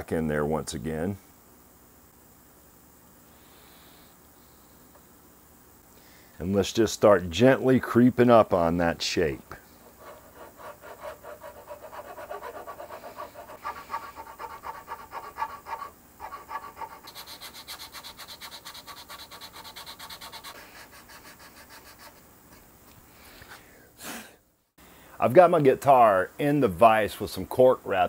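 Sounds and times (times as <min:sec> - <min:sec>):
hand file rasping on wood: 0:09.9 - 0:22.2
sanding block on wood: 0:09.9 - 0:22.2.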